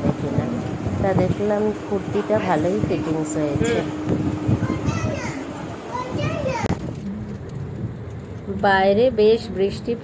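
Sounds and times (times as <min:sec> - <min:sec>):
low hum: 0:00.0 - 0:05.9, 0:06.6 - 0:08.6
indistinct voices talking: 0:00.1 - 0:07.5.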